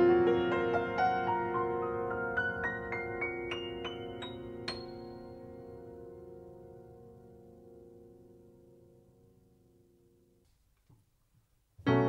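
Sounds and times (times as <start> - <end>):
piano chords: 0.0 - 10.2, 11.8 - 12.0.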